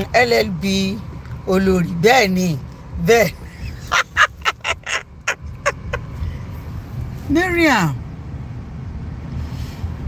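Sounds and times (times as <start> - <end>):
car cabin rumble: 0.0 - 10.0
woman laughing breathily: 3.4 - 6.6.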